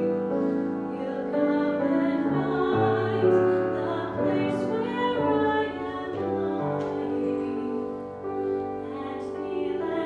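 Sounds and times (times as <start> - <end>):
grand piano playing: 0.0 - 10.0
woman singing: 0.0 - 10.0.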